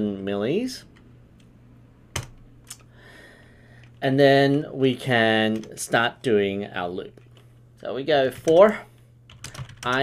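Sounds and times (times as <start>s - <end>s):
low steady hum: 0.0s - 10.0s
computer keyboard keystrokes: 2.2s - 2.9s, 9.3s - 10.0s.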